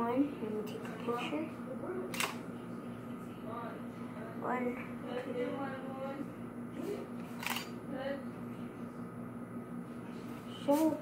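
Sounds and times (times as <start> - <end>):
camera shutter click: 2.1 - 2.4, 7.4 - 7.7.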